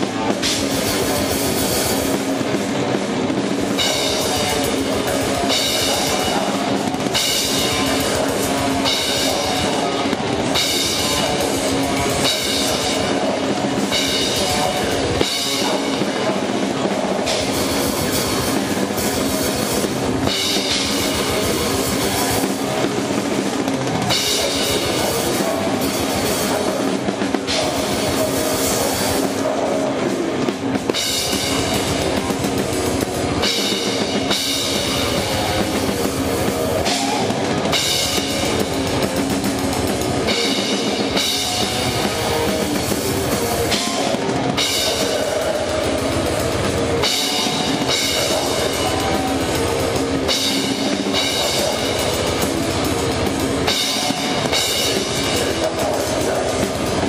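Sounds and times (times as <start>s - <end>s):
cymbals crashing: 0.0s - 57.0s
loud distorted metal band: 0.0s - 57.0s
rapid bass drum strokes: 0.0s - 57.0s.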